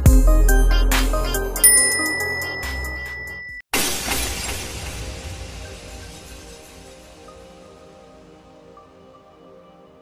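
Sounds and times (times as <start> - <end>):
background music: 0.0 - 3.4, 5.1 - 10.0
glass shattering: 3.7 - 7.2.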